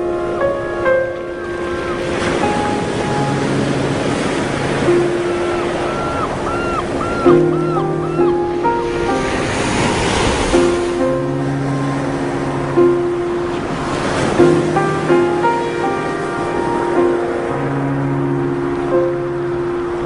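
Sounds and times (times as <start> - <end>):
ocean surf: 0.0 - 20.0
soft background music: 0.0 - 20.0.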